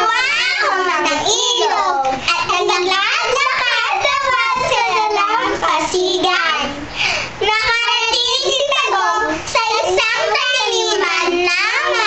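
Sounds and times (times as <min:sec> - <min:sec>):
young girls singing: 0:00.0 - 0:12.0.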